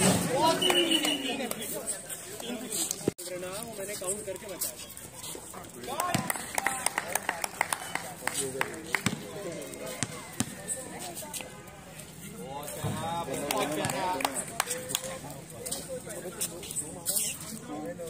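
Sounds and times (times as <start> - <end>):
basketball bouncing on concrete: 6.0 - 6.4, 8.9 - 9.3, 9.9 - 10.6.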